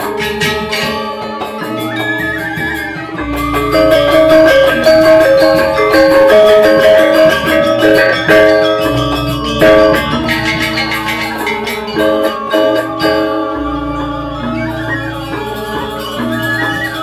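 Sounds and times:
metallophones ringing notes: 0:00.0 - 0:17.0.

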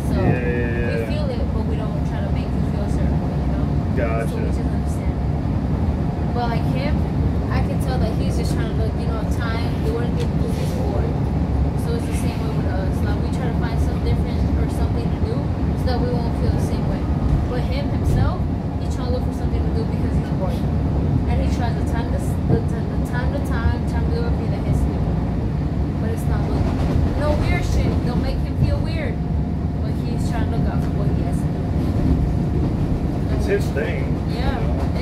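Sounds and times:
passengers talking: 0:00.0 - 0:35.0
train wheels and motors rumbling: 0:00.0 - 0:35.0.

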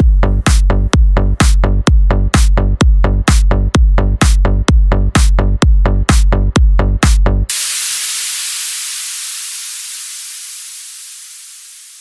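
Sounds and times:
white-noise hiss: 0:07.5 - 0:12.0.

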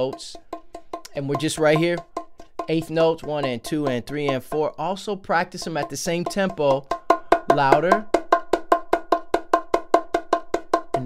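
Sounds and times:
bongos struck by hand: 0:00.0 - 0:11.0.

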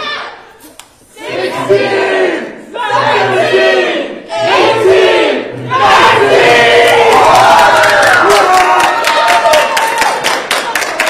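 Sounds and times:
group of people shouting and cheering: 0:01.2 - 0:11.0.

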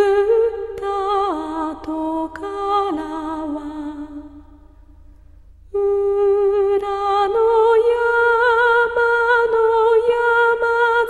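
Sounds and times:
woman singing a lullaby: 0:00.0 - 0:04.2, 0:05.8 - 0:11.0.

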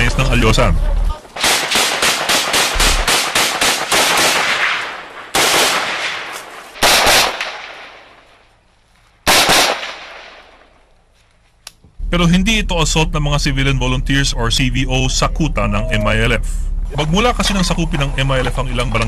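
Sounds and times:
rifle gunfire with echo: 0:01.4 - 0:08.3, 0:09.3 - 0:10.8.

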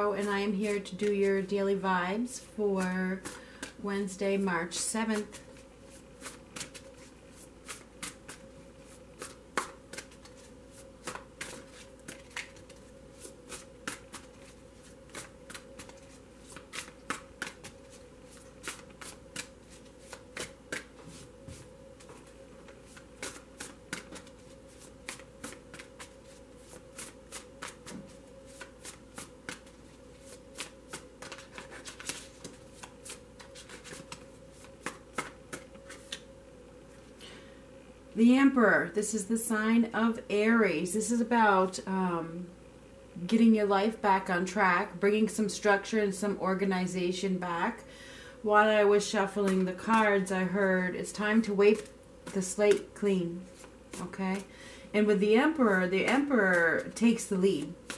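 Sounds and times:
cards being shuffled: 0:05.1 - 0:21.3, 0:22.0 - 0:36.3, 0:56.1 - 0:57.9.

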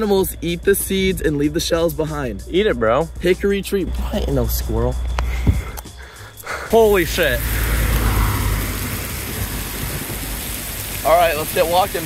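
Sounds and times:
rain falling on road and grass: 0:06.7 - 0:12.0.

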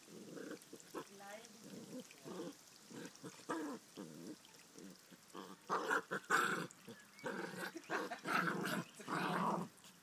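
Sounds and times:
dogs growling: 0:00.0 - 0:09.7.

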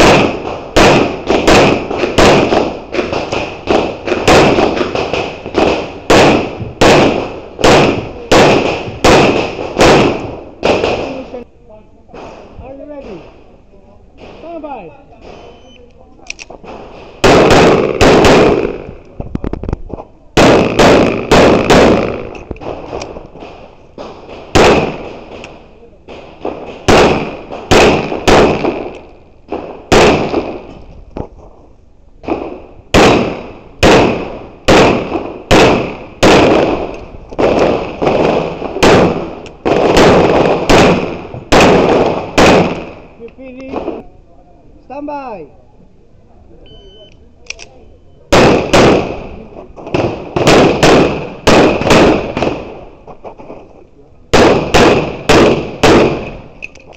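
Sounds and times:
pistol shots: 0:00.0 - 0:11.4, 0:15.2 - 0:19.0, 0:20.4 - 0:30.8, 0:32.2 - 0:44.0, 0:47.5 - 0:52.9, 0:54.3 - 0:56.9.

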